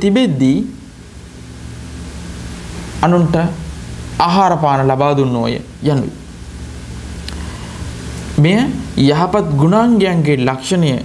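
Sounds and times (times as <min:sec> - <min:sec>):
faint low hum: 0:00.0 - 0:11.0
recording hiss: 0:00.0 - 0:11.0.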